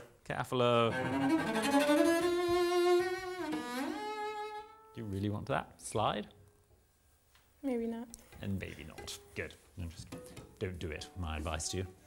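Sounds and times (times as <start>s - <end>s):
bowed cello sliding between notes: 0.8s - 5.2s.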